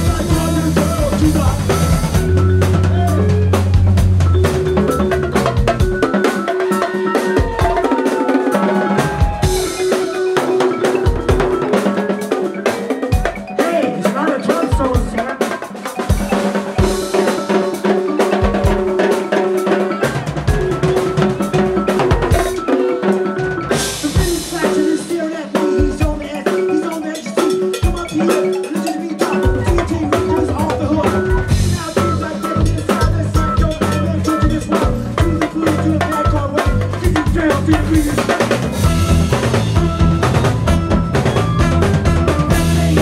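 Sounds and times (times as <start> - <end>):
heavy low bass: 0.0 - 4.8
drum kit: 0.0 - 43.0
timbales and bongos: 0.0 - 43.0
vibraphone notes: 0.0 - 43.0.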